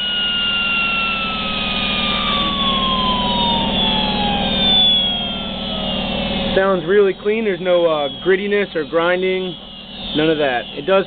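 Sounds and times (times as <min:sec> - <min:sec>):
air grinder whine spinning down: 0:00.0 - 0:11.0
steady low hum: 0:00.0 - 0:11.0.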